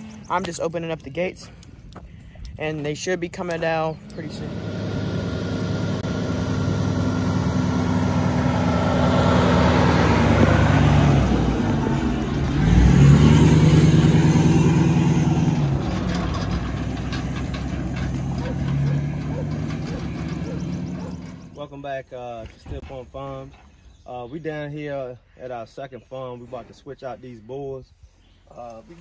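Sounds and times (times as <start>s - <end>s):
truck engine passing: 3.6s - 21.8s.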